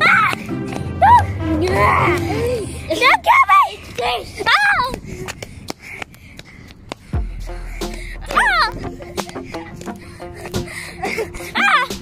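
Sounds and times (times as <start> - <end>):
footsteps on paving: 0.0 - 10.8.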